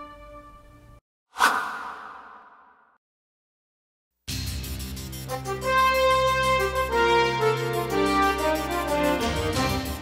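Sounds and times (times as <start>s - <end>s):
whoosh sound effect: 1.4s - 3.0s.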